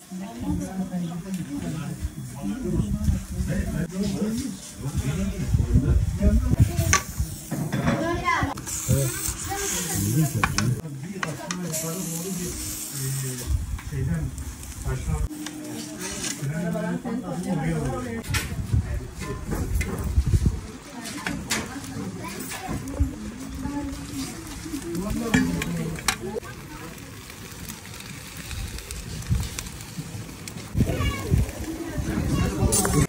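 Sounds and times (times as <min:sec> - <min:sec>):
food sizzling on charcoal: 0:00.0 - 0:33.0
steady hiss: 0:00.0 - 0:33.0.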